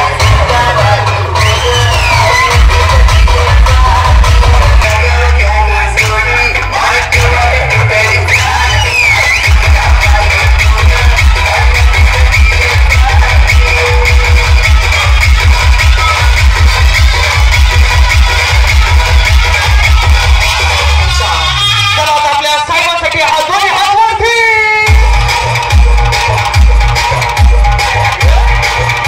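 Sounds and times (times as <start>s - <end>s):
electronic dance music: 0.0s - 29.0s
heavy fast bass beat: 0.0s - 29.0s.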